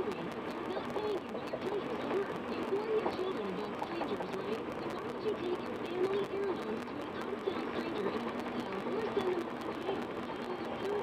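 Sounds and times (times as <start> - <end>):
muffled person's voice: 0.0 - 11.0.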